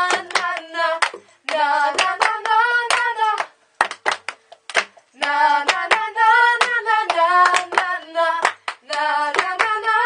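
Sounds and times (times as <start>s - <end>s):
girls singing: 0.0s - 3.6s, 4.8s - 10.0s
hands clapping: 0.0s - 9.9s.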